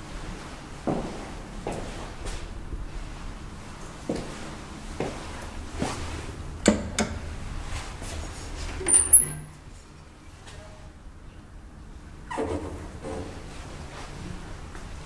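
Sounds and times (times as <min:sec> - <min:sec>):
elevator doors knocking and clicking: 0:06.6 - 0:07.3.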